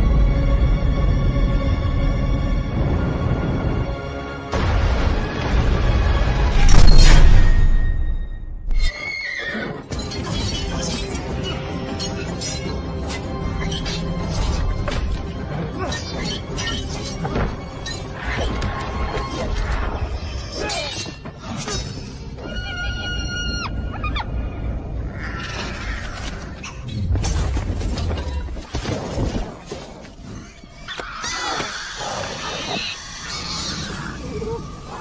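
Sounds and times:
film music: 0.0 - 35.0
sharp hit: 6.4 - 8.7
horse whinnying: 8.8 - 9.9.

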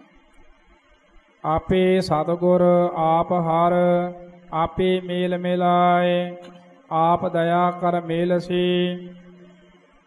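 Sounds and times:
man chanting: 1.4 - 9.4.

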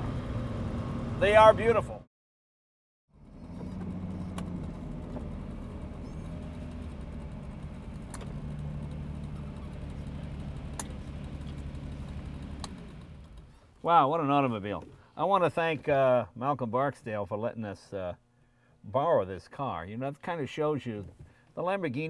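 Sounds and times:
car engine running at low revs: 0.0 - 2.0, 3.1 - 13.8.

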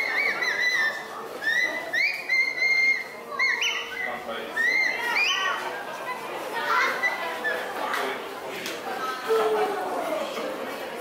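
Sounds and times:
birds whistling: 0.0 - 5.6
faint background voices: 0.0 - 11.0.

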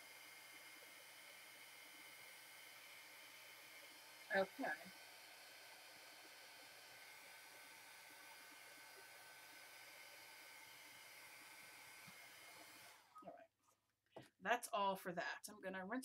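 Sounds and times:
heat gun blowing hiss: 0.0 - 13.1.

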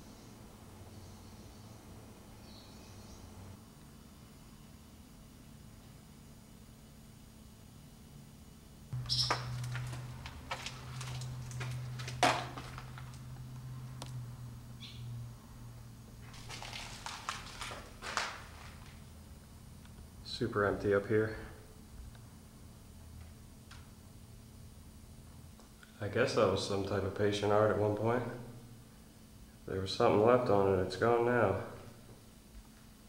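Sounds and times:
low steady hum: 0.0 - 33.0
footsteps crunching on gritty floor: 9.0 - 13.4, 16.2 - 19.1.

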